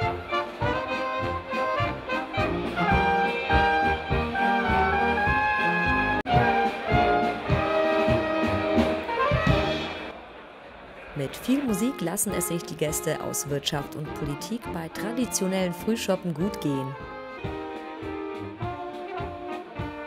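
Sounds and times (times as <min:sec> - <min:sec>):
brass band playing: 0:00.0 - 0:10.1, 0:11.2 - 0:20.0.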